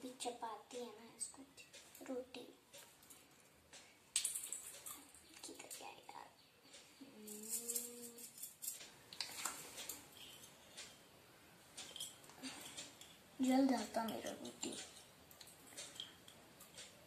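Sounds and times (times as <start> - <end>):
small metal utensils clinking: 7.2 - 8.9, 14.0 - 16.4.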